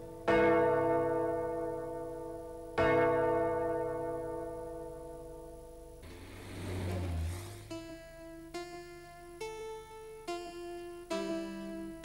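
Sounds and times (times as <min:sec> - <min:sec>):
large church bell tolling: 0:00.0 - 0:08.4.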